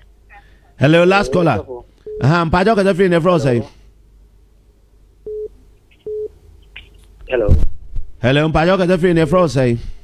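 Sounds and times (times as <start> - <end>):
telephone busy tone beeps: 5.3 - 5.5, 6.1 - 6.3.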